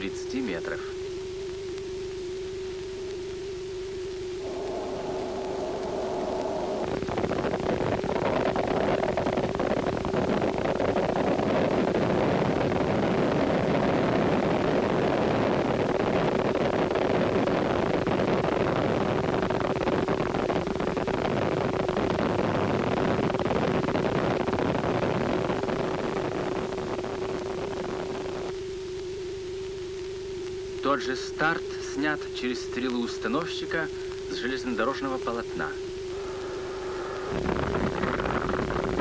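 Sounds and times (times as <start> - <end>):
steady hum tone: 0.0 - 39.0
rocket boosters firing: 4.4 - 13.1, 37.1 - 39.0.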